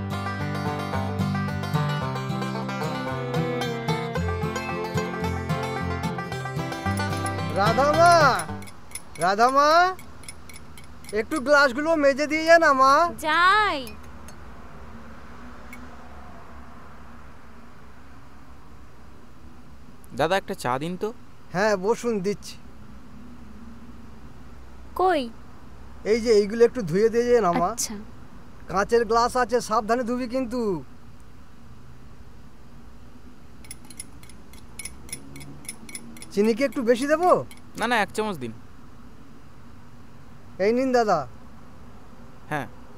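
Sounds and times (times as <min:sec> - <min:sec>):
low hum and hiss: 0:00.0 - 0:42.9.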